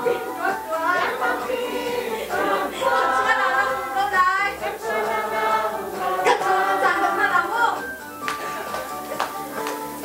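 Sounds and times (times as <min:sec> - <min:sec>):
congregation singing: 0:00.0 - 0:07.7.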